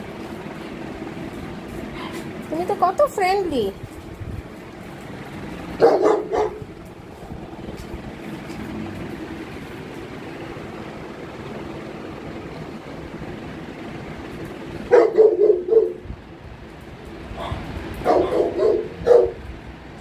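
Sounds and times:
dog barking: 0:05.8 - 0:06.6, 0:14.9 - 0:16.0, 0:17.4 - 0:19.4.

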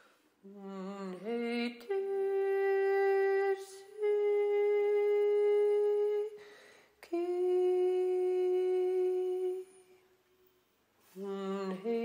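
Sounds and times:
short breath: 0:00.0 - 0:00.4, 0:06.4 - 0:07.0
person humming held notes: 0:00.4 - 0:06.4, 0:07.0 - 0:10.0.

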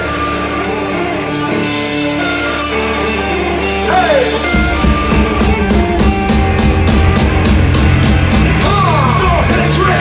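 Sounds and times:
drums with cymbal beat: 0:00.0 - 0:10.0
electric guitar riff: 0:00.0 - 0:10.0
live rock band playing: 0:00.0 - 0:10.0.

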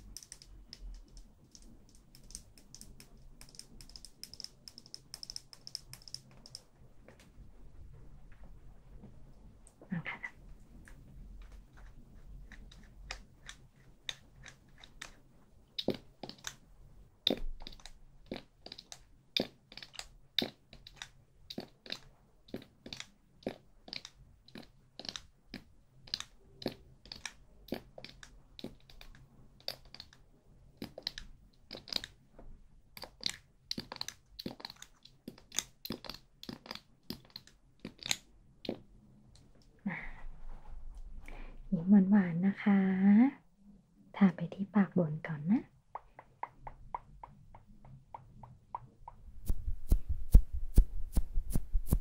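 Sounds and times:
crisp clicks and crackles: 0:10.8 - 0:32.2, 0:32.9 - 0:39.7.

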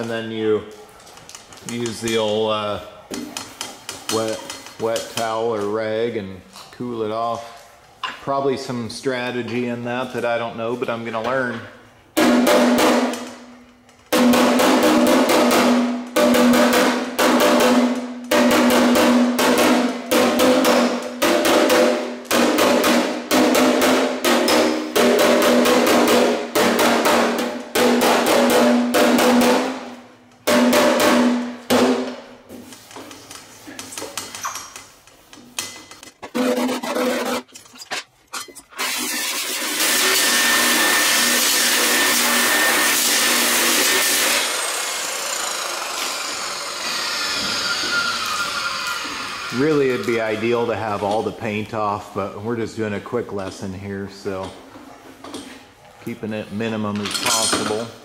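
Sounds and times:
hammer striking steel panel: 0:12.2 - 0:32.2
angle grinder on metal: 0:38.8 - 0:50.0.

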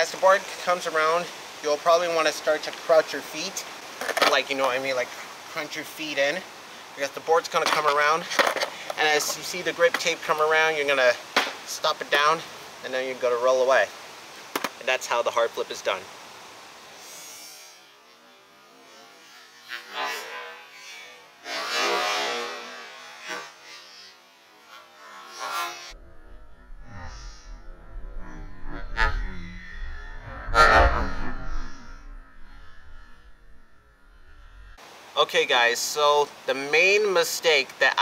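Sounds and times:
skateboard hitting ground: 0:07.6 - 0:08.7, 0:11.3 - 0:11.6, 0:14.5 - 0:14.8
skateboard wheels rumbling on concrete: 0:07.6 - 0:10.2.

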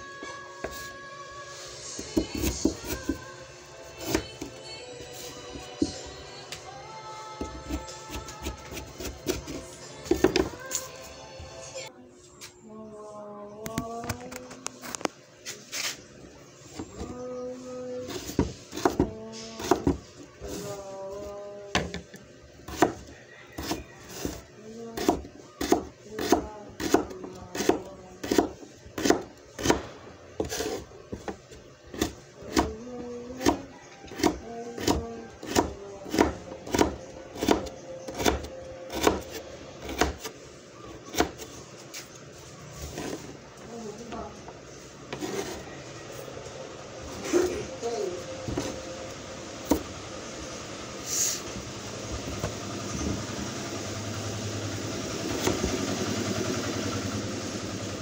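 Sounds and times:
knife chopping on cutting board: 0:07.7 - 0:10.5, 0:18.3 - 0:20.0, 0:22.7 - 0:23.0, 0:25.0 - 0:32.8, 0:33.4 - 0:40.3.

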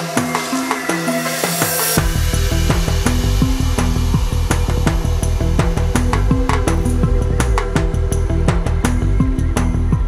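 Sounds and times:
downtempo electronic music: 0:00.0 - 0:10.0.

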